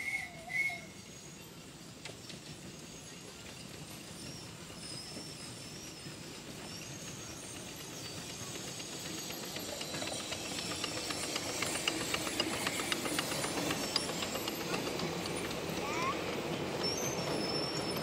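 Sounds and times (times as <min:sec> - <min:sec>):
miniature steam locomotive passing: 0:00.0 - 0:18.0
steam hissing: 0:00.0 - 0:18.0
wheels clicking on track: 0:00.0 - 0:18.0.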